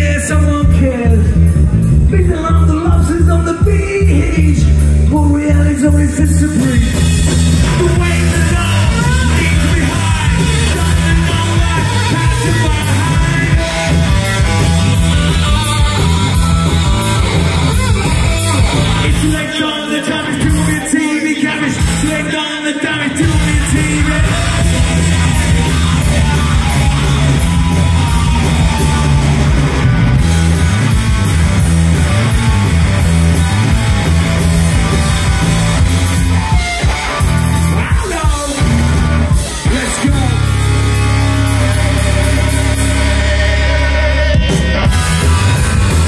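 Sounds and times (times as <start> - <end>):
steady drum beat: 0.0 - 20.9, 21.7 - 22.4, 23.1 - 46.0
bass: 0.0 - 46.0
electric guitar: 0.0 - 46.0
sliding guitar notes: 6.6 - 19.5, 23.2 - 46.0.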